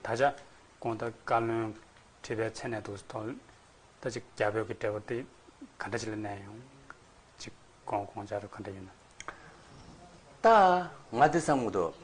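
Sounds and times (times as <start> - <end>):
man speaking: 0.0 - 9.0, 10.0 - 12.0.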